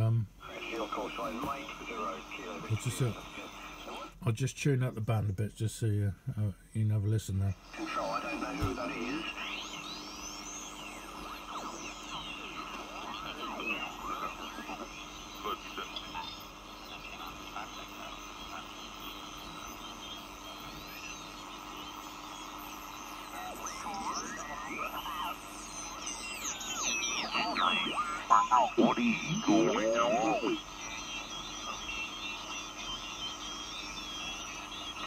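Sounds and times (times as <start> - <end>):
garbled radio voices: 0.0 - 35.0
radio band hiss: 0.0 - 35.0
radio whistles: 7.8 - 35.0.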